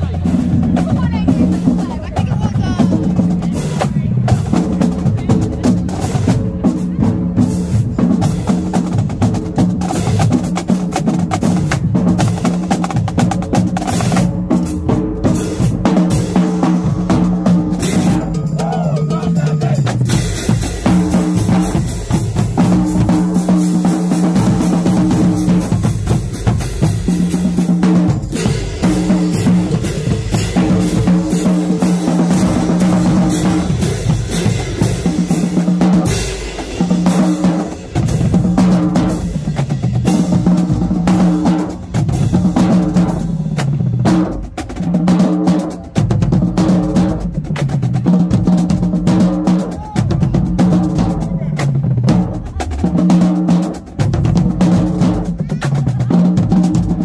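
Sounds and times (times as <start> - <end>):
bass drums: 0.0 - 57.0.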